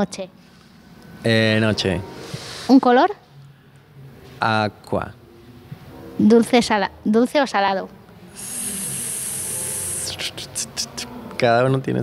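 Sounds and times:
person hissing through teeth: 8.3 - 11.2.

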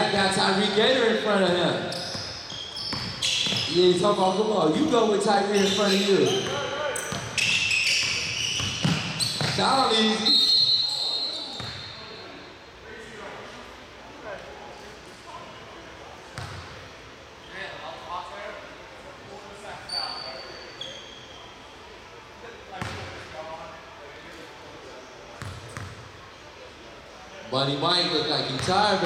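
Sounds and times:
basketball bouncing on hardwood: 8.6 - 9.6.

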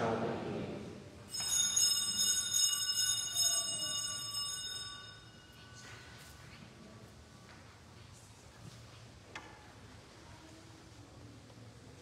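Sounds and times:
bells ringing: 1.3 - 6.2.

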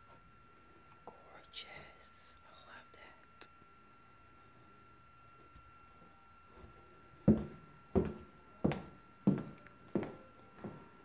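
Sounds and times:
faint high whine: 0.0 - 11.0
person whispering: 1.0 - 3.5.

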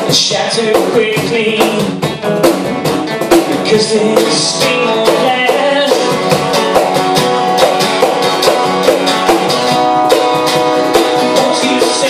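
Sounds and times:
acoustic guitar strumming chords: 0.0 - 12.0
cajon played by hand: 0.0 - 12.0.

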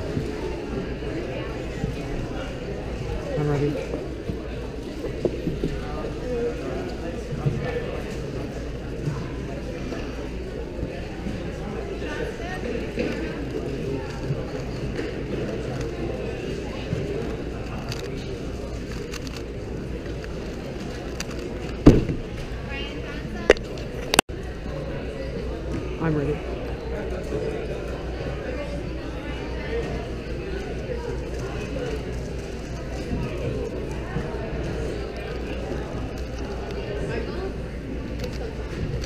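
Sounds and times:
people chattering in a hall: 0.0 - 39.0.

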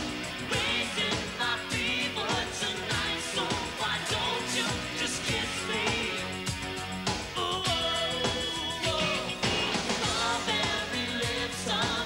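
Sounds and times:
drum beat: 0.0 - 12.0
synthesizer keyboards: 0.0 - 12.0
man singing: 0.4 - 6.4, 7.3 - 12.0.

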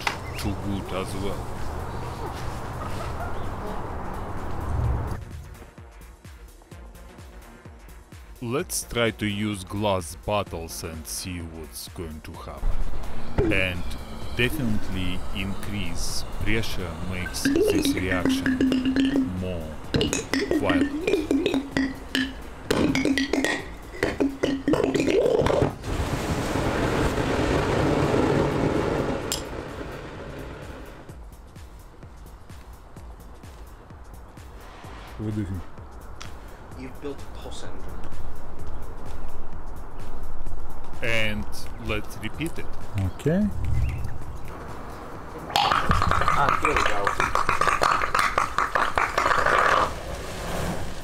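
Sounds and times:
short pitched music notes: 13.4 - 23.6
burning gas jet rushing: 25.8 - 31.1.

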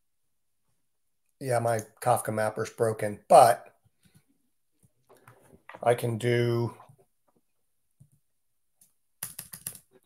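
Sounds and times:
typing on computer keyboard: 9.2 - 10.0.

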